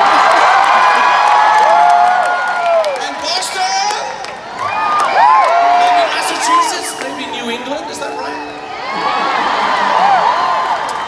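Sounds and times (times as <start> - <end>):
voices whooping and shouting: 0.0 - 3.0, 4.6 - 7.0, 8.3 - 11.0
crowd cheering: 0.0 - 11.0.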